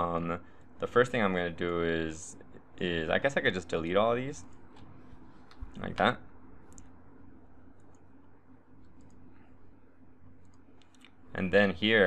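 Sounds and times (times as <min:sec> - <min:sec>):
low steady hiss: 0:00.0 - 0:12.0
computer mouse clicks: 0:06.7 - 0:06.9, 0:07.8 - 0:08.1, 0:08.8 - 0:09.2, 0:10.4 - 0:11.2.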